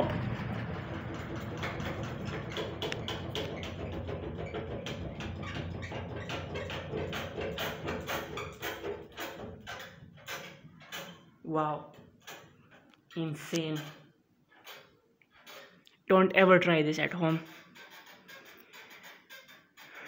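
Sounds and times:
ceiling fan hum: 0.0 - 10.2.

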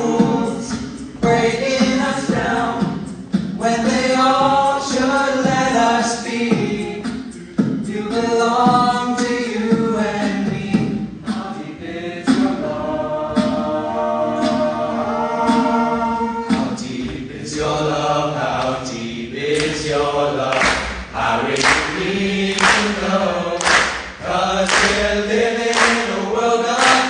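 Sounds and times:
male a cappella group singing: 0.0 - 27.0.

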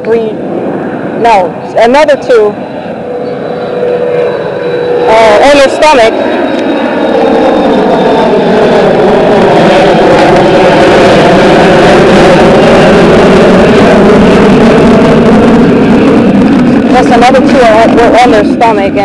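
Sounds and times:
jet aircraft passing overhead: 0.0 - 19.0.

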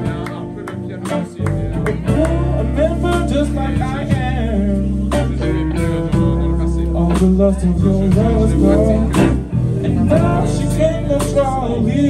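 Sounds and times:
bass guitar: 0.0 - 12.0
drums: 0.0 - 12.0
electric guitar: 0.0 - 12.0
keyboards: 0.0 - 12.0.

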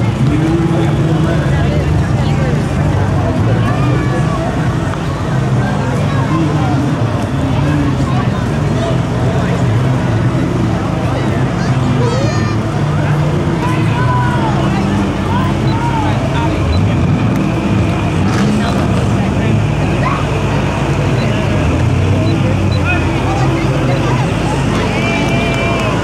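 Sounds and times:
spectators chattering: 0.0 - 26.0
vehicle engines rumbling: 0.0 - 26.0.

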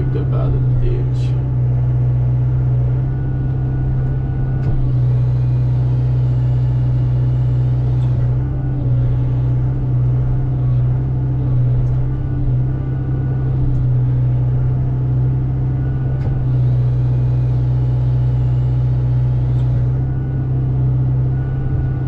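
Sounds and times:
diesel engine running: 0.0 - 22.0
hydraulics lifting log: 0.0 - 22.0.

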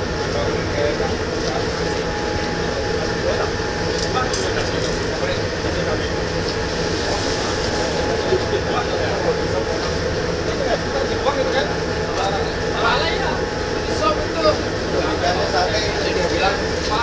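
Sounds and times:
ship machinery humming: 0.0 - 17.0.

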